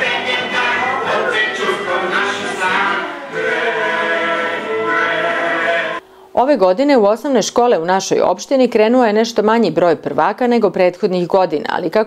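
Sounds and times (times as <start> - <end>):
children singing together: 0.0 - 6.0.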